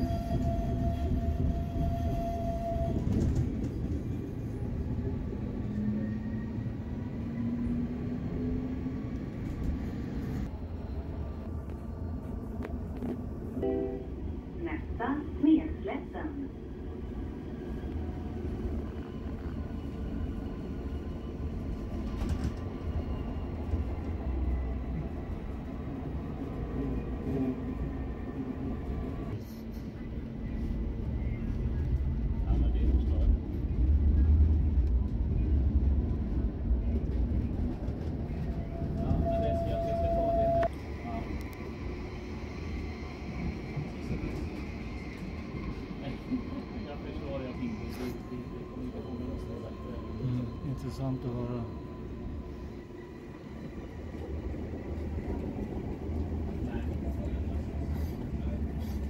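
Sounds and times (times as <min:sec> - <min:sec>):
tram rumbling on rails: 0:00.0 - 0:59.0.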